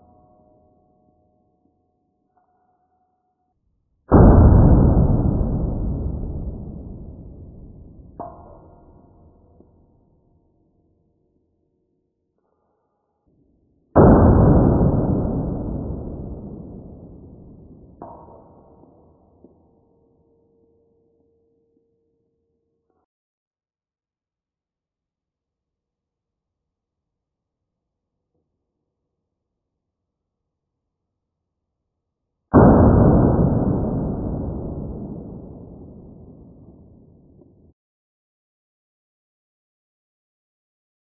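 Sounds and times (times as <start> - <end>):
slowed down pistol shot boom: 4.1 - 8.2, 14.0 - 18.0, 32.6 - 37.3.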